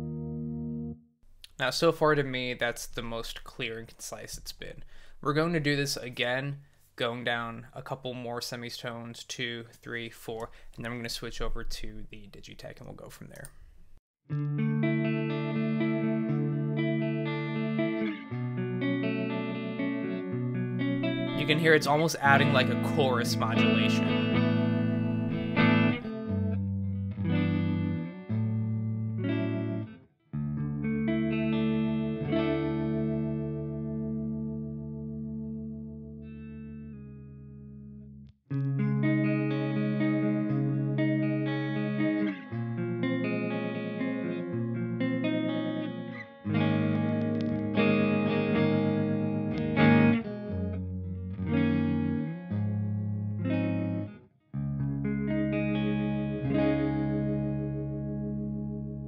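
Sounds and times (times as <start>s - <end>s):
clean electric guitar strumming: 14.3s - 59.0s.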